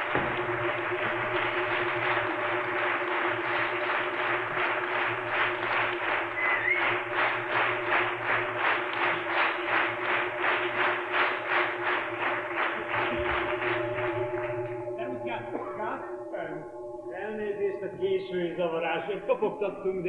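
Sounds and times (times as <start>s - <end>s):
audience applauding: 0.0s - 16.0s
steady low hum: 0.0s - 20.0s
short whistle: 6.4s - 7.0s.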